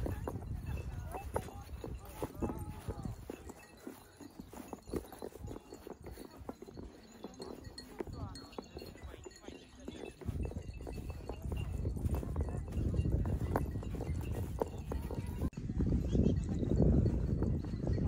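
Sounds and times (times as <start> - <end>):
wind rumbling on microphone: 0.0 - 18.0.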